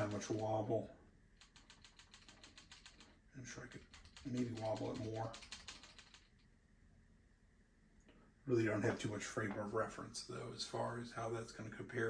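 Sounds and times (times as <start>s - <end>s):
faint rapid ticking: 0.0s - 6.4s.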